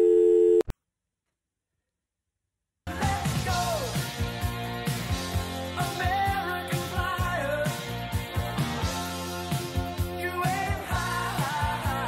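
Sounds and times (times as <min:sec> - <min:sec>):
telephone line tone: 0:00.0 - 0:00.7.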